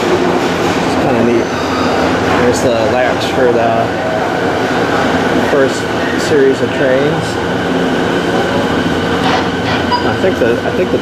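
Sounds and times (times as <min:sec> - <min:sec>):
whining tones: 0:00.0 - 0:10.9
electric train humming: 0:00.0 - 0:11.0.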